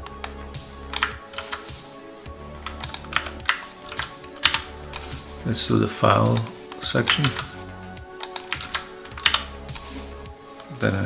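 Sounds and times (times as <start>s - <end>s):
computer keyboard typing: 0.0s - 1.8s, 2.6s - 5.2s, 6.2s - 7.6s, 8.2s - 9.9s.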